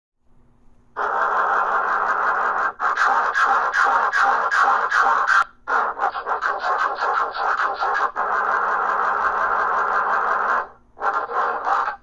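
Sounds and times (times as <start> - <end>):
loud harsh pulsing noise: 1.0 - 12.0.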